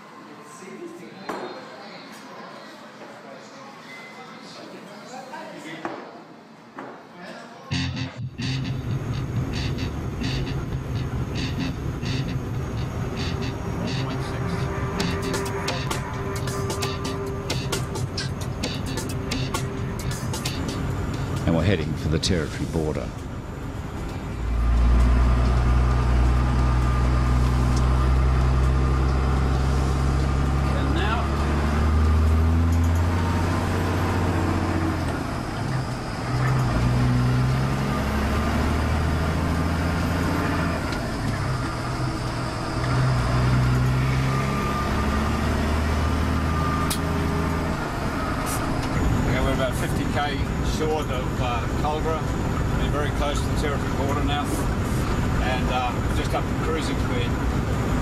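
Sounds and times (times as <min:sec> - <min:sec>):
diesel truck engine: 0:07.7 - 0:58.0.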